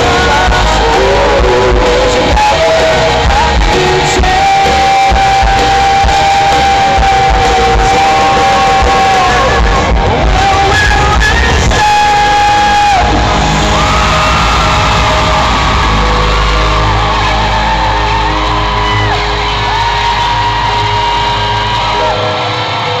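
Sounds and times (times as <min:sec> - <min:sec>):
fans screaming and whooping: 0:00.0 - 0:23.0
pop-rock band playing: 0:00.0 - 0:23.0.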